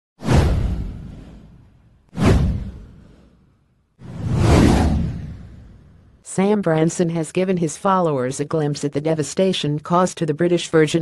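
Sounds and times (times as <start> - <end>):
whoosh transition effects: 0.2 - 6.1.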